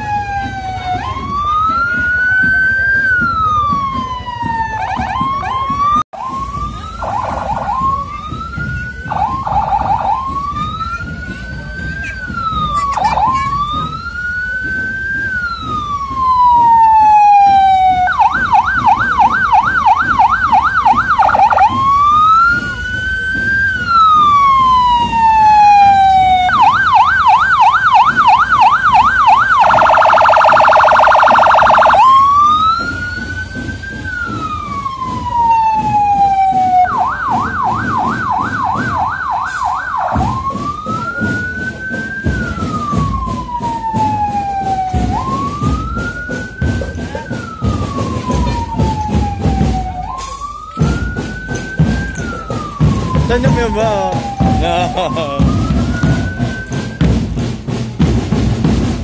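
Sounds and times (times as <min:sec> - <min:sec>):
electronic police siren: 0:00.0 - 0:57.4.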